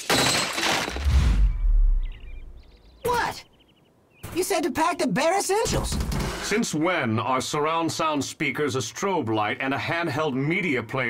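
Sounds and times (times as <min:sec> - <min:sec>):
cartoon rushing crash: 0:01.0 - 0:02.1
deep rumble: 0:01.0 - 0:02.7.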